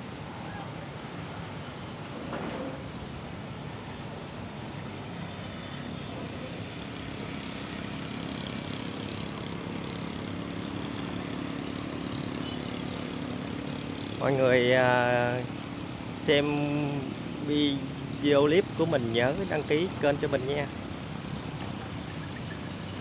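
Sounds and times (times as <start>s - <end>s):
distant traffic hum: 0.0s - 23.0s
faint low engine drone: 0.0s - 23.0s.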